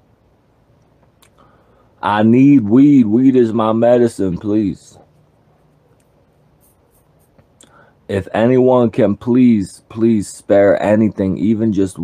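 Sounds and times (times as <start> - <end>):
faint room hiss: 0.0 - 12.0
short breath: 1.3 - 2.0, 7.6 - 8.0.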